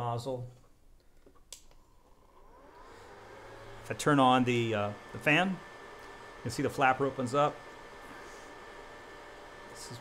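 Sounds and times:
fan whine spinning up: 0:02.0 - 0:10.0.

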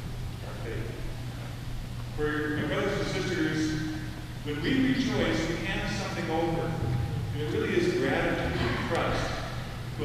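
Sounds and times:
steady low hum: 0:00.0 - 0:10.0
faint man's voice reading: 0:02.1 - 0:10.0.

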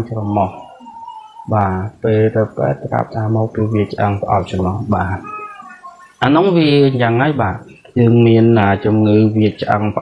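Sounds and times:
man speaking: 0:00.0 - 0:00.8, 0:01.5 - 0:10.0.

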